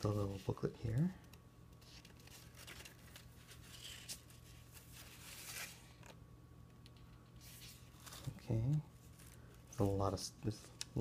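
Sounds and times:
low steady hum: 0.0s - 11.0s
paper pages rustling: 1.8s - 6.2s, 7.0s - 11.0s.

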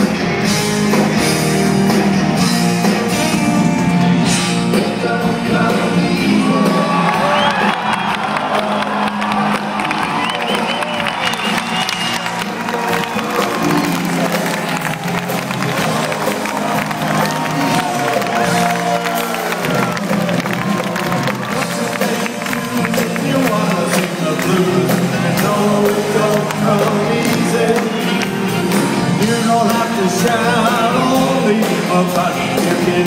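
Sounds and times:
live rock band playing: 0.0s - 33.0s
crowd whooping and cheering: 6.2s - 24.0s.

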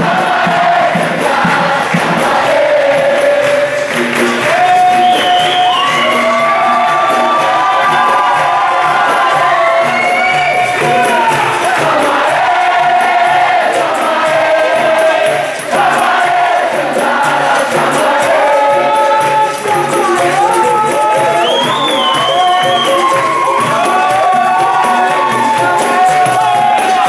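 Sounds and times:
group singing in chorus: 0.0s - 27.0s
steady rhythmic beat: 0.0s - 27.0s
hand clapping: 1.0s - 27.0s.

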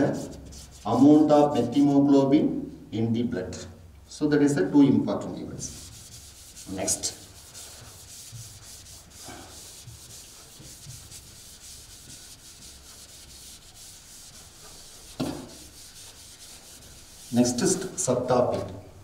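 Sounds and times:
duster rubbing chalkboard: 0.0s - 1.8s, 5.6s - 18.3s.

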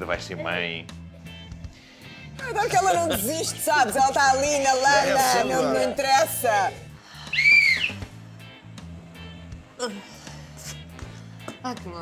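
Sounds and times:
quiet background music: 0.0s - 12.0s
comic whistle tone: 7.3s - 8.0s.

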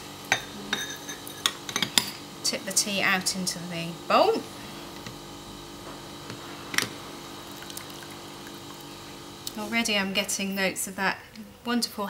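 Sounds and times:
tea trickling into bowl: 7.3s - 9.1s.

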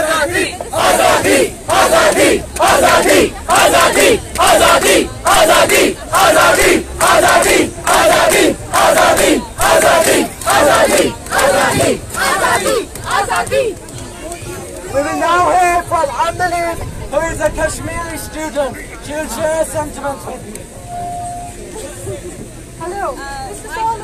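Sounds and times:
crowd chanting a slogan: 0.0s - 16.4s.

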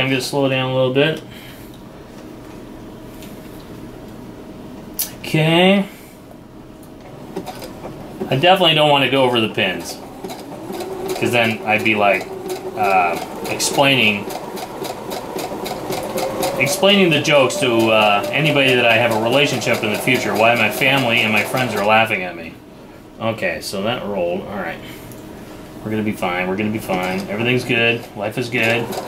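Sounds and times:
sewing machine running: 7.4s - 8.0s, 8.9s - 22.4s, 26.7s - 29.0s.

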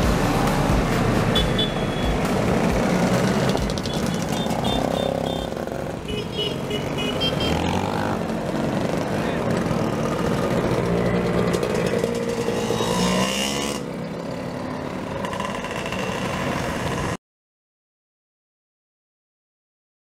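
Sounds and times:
motor scooters riding past: 2.4s - 17.2s.

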